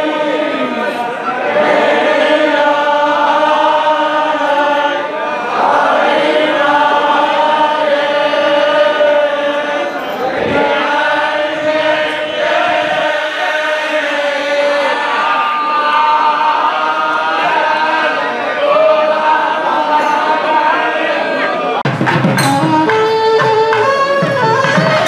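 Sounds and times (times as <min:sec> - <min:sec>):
men chanting hymns in unison: 0:00.0 - 0:21.6.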